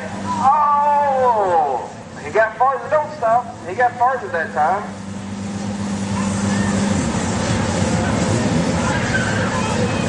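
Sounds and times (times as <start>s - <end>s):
off-road vehicle engine running hard: 0.0s - 10.0s.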